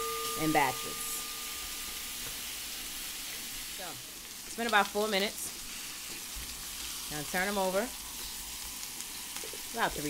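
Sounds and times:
meat sizzling in oil: 0.0s - 10.0s.

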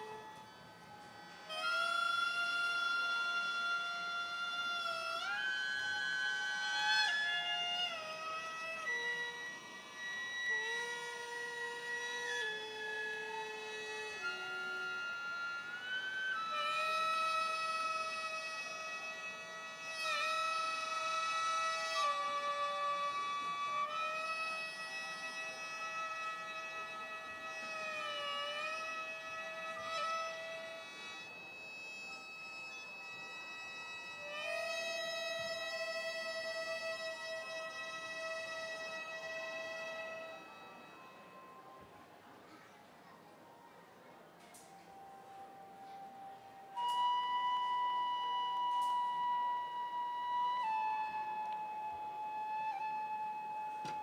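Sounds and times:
wind instrument melody: 0.0s - 54.0s.

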